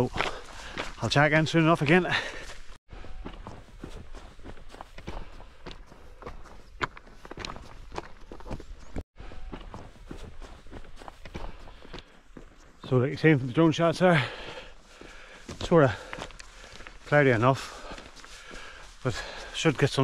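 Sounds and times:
footsteps on trail: 0:00.0 - 0:20.0.

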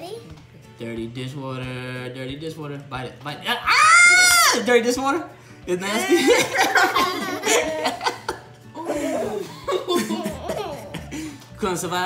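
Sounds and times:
background music: 0:00.0 - 0:12.0
people laughing: 0:05.9 - 0:11.4.

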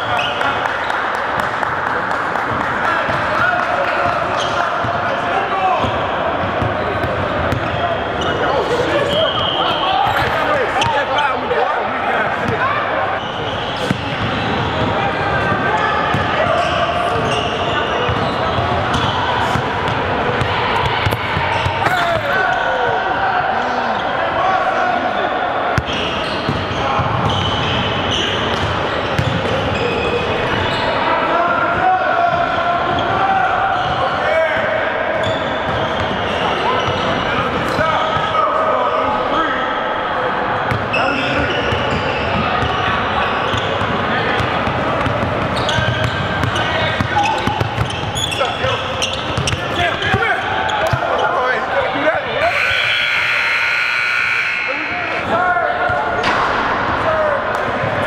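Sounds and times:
players shouting and chatting: 0:00.0 - 0:58.0
basketballs bouncing on hardwood: 0:49.0 - 0:49.6.

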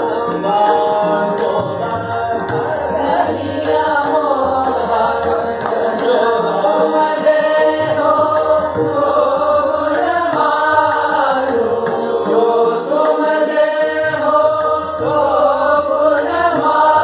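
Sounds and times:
classical vocal singing: 0:00.0 - 0:17.0
tabla drumming: 0:00.0 - 0:17.0.

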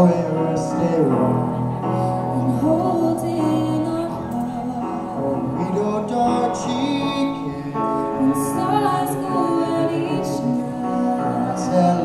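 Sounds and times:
piano accompaniment: 0:00.0 - 0:12.0
man and woman singing duet: 0:02.2 - 0:12.0.

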